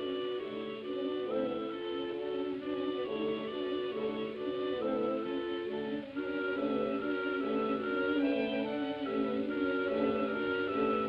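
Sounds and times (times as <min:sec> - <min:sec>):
orchestral strings melody: 0:00.0 - 0:11.0.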